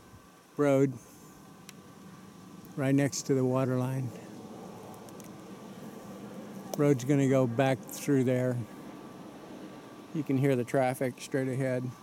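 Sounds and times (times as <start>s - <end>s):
distant road traffic hum: 0.0s - 12.0s.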